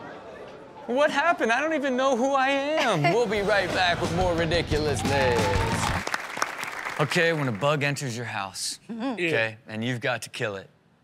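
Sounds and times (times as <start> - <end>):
man's voice: 1.0 - 6.0
audience applause: 3.4 - 8.1.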